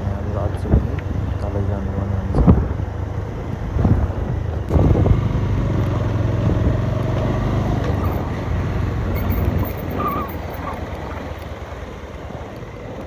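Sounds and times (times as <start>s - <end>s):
road and wind rumble: 0.0s - 13.0s
vehicle engine running: 0.0s - 13.0s.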